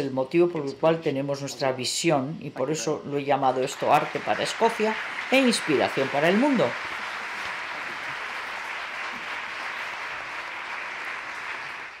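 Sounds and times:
audience applauding: 3.6 - 12.0.

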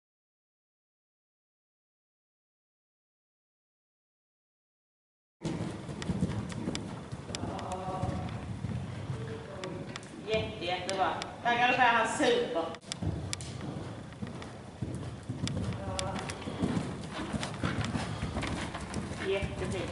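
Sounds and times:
horse hoofbeats on sand: 5.4 - 9.9, 12.9 - 19.9.

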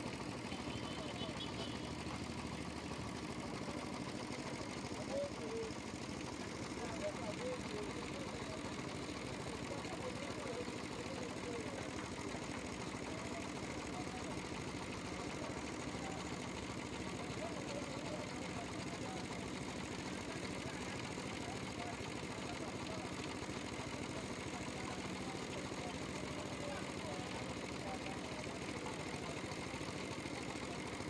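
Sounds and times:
air compressor humming: 0.0 - 31.0.

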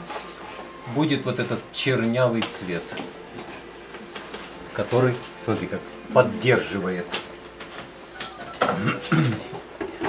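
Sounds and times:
person speaking: 4.7 - 7.1.

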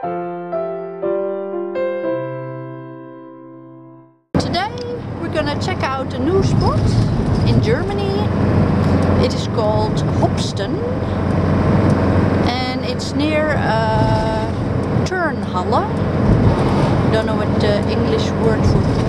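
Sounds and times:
woman talking: 4.4 - 8.4, 9.1 - 11.1, 12.4 - 16.1, 17.1 - 19.0
engine and road noise: 4.4 - 19.0.

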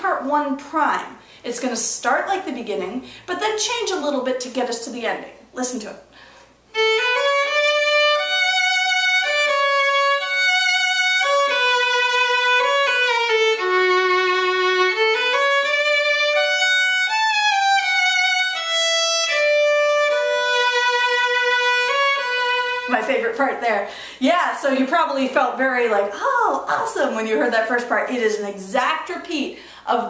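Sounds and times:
solo fiddle waltz melody: 6.7 - 23.3.

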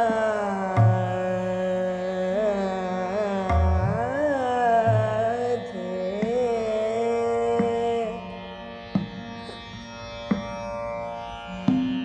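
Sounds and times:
woman singing classical vocal: 0.0 - 8.4
slow tabla strokes: 0.0 - 12.0.

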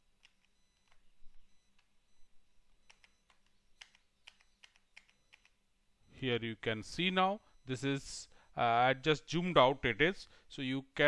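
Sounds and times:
computer keys and mouse clicking: 0.2 - 1.1, 2.8 - 5.6.

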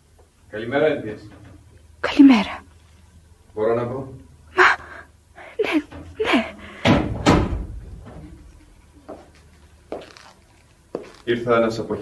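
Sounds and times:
door shutting with thuds: 5.9 - 8.4.

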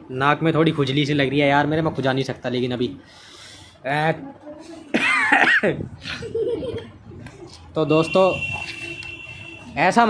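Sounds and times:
man laughing: 5.0 - 6.9.

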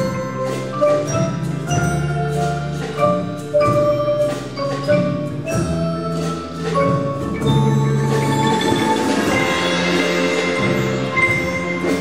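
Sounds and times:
mallet percussion ensemble: 0.0 - 12.0.

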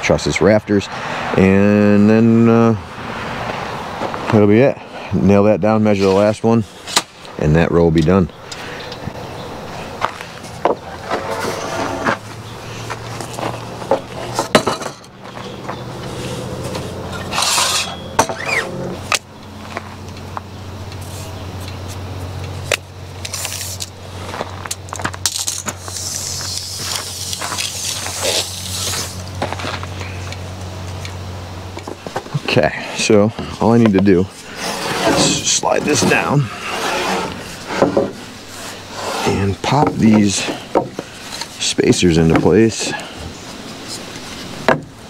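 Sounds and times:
tape measure clinking: 17.2 - 18.5.

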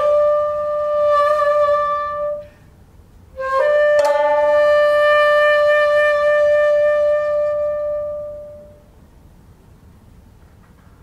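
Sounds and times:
shakuhachi long note: 0.0 - 8.9.

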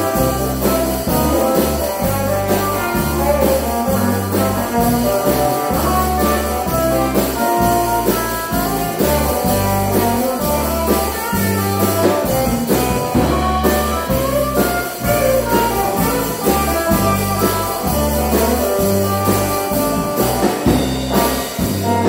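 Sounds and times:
drum kit: 0.0 - 22.0
electric guitars: 0.0 - 22.0
low held bass notes: 0.0 - 22.0.

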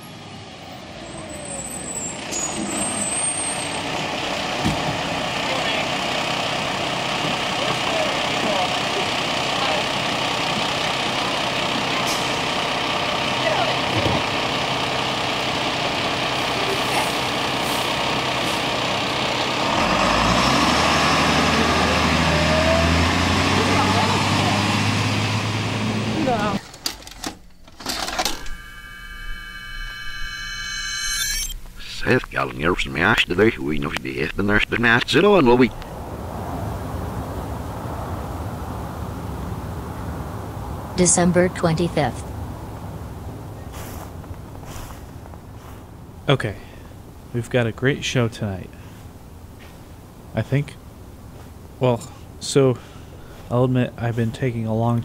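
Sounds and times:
diesel engine running: 0.0 - 55.0.

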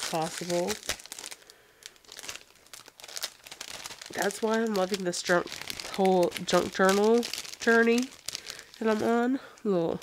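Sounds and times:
plastic packaging crinkling: 0.0 - 9.6.

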